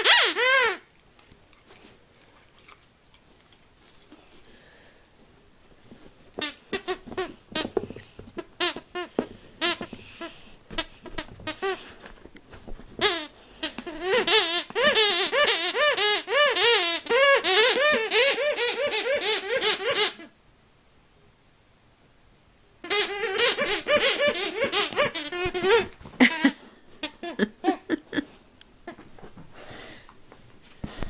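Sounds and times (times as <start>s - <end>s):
dog toy squeaking: 0.0s - 0.8s, 6.4s - 11.8s, 13.0s - 20.3s, 22.8s - 27.8s.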